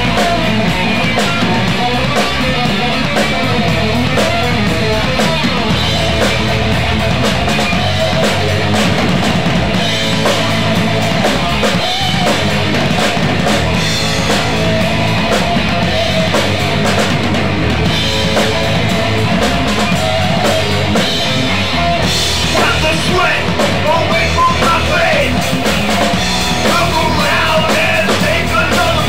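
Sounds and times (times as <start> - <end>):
bass guitar: 0.0 - 29.0
drum kit with cymbals: 0.0 - 29.0
electric guitar: 0.0 - 29.0.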